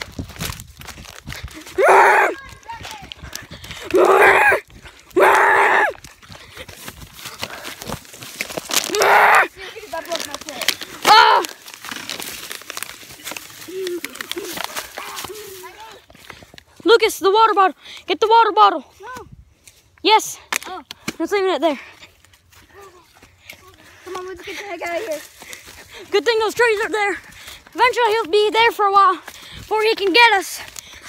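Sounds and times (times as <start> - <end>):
footsteps through leaves and twigs: 0.0 - 16.8, 21.7 - 31.0
children shouting and screaming: 1.6 - 6.1, 8.8 - 11.7, 13.0 - 16.2.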